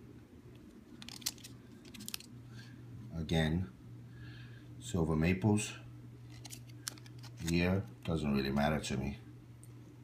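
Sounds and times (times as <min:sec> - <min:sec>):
low steady hum: 0:00.0 - 0:10.0
plastic coin holder crinkling: 0:00.9 - 0:02.3, 0:06.3 - 0:07.8.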